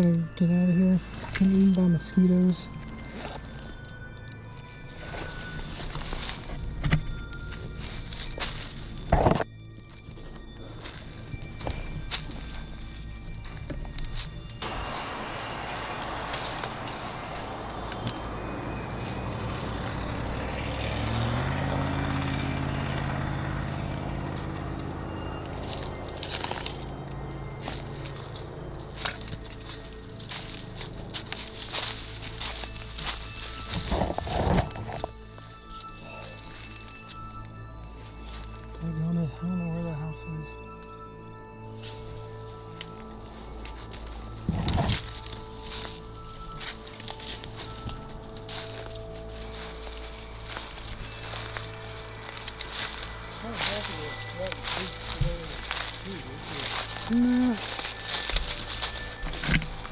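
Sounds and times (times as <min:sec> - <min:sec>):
background music: 0:00.0 - 0:59.9
footsteps through leaf litter: 0:04.6 - 0:09.1, 0:10.0 - 0:22.2, 0:23.1 - 0:38.9, 0:41.8 - 0:59.9
passing vehicle: 0:14.6 - 0:39.4, 0:41.9 - 0:59.9.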